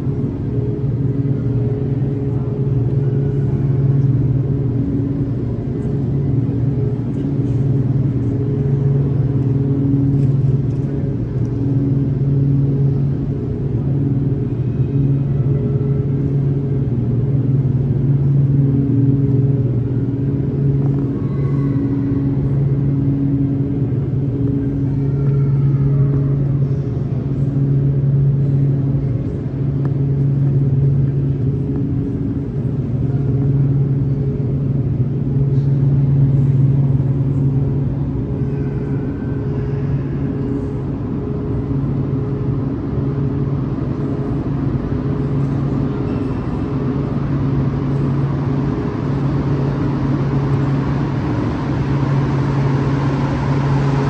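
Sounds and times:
metro train rumbling: 0.0 - 54.0
rising and falling whines: 0.0 - 54.0.

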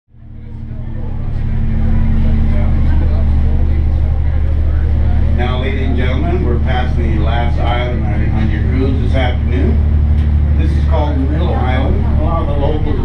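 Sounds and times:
boat engine droning: 0.1 - 13.0
man speaking over microphone: 5.2 - 10.0, 10.6 - 13.0.

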